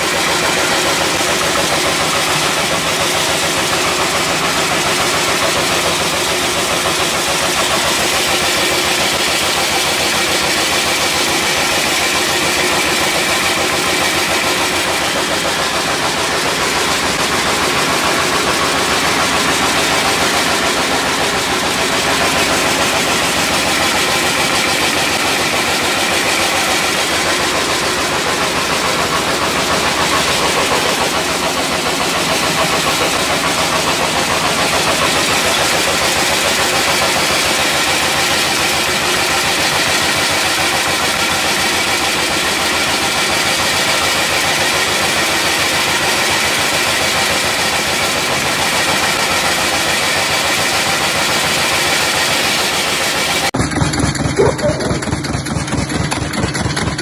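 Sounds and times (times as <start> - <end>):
cutting machine running: 0.0 - 57.0.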